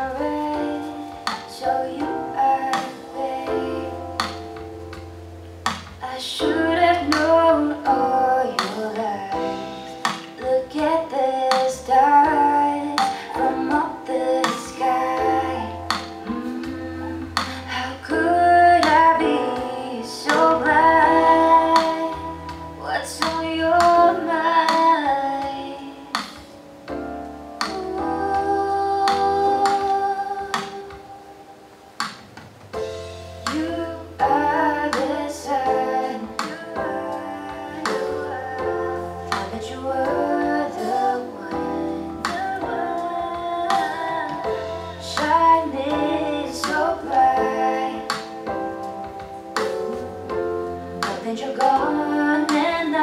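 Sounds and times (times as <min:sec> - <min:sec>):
woman singing: 0:00.0 - 0:04.6, 0:05.9 - 0:26.5, 0:27.6 - 0:31.6, 0:33.4 - 0:53.0
low bass notes: 0:00.0 - 0:53.0.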